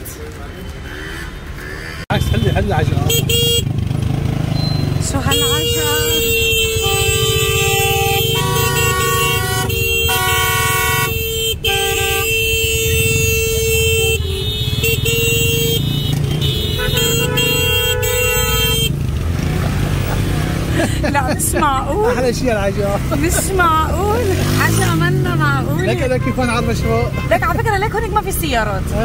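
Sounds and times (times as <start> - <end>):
vehicle horns honking: 2.1 - 3.8, 4.4 - 19.6, 23.0 - 28.2
engines running: 12.7 - 29.0.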